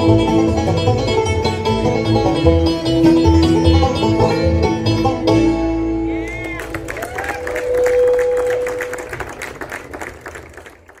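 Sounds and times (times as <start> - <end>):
audience clapping: 6.2 - 11.0.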